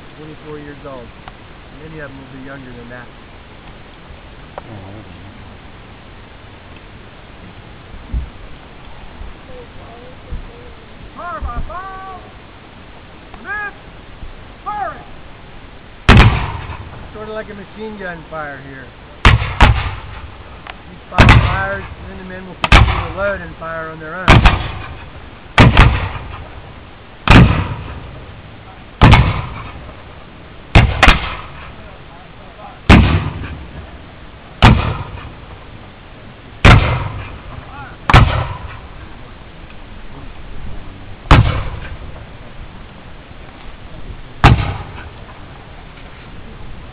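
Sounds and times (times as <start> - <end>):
person shouting drill command: 11.2 - 12.4, 13.4 - 13.8, 14.6 - 15.1
rifle shots echoing: 16.1 - 17.1, 19.2 - 20.4, 21.2 - 22.0, 22.6 - 23.4, 24.2 - 26.6, 27.2 - 28.2, 29.0 - 29.9, 30.7 - 31.8, 32.9 - 33.9, 34.6 - 35.4, 36.6 - 39.0, 41.3 - 42.1, 44.4 - 45.2.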